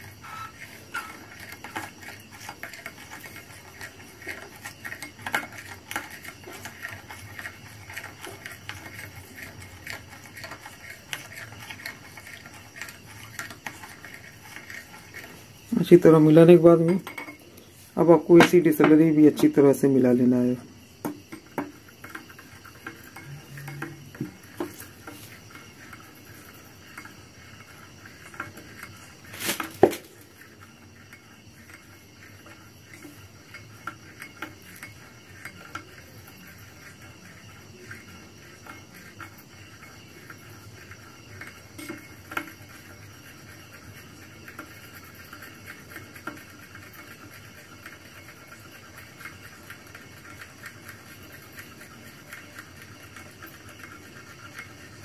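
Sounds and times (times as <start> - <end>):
metal spoon scraping glass bowl: 0.0 - 19.5, 21.3 - 27.2.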